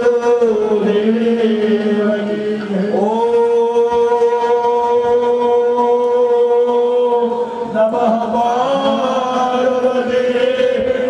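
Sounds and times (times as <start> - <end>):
devotional chanting on long notes: 0.0 - 11.0.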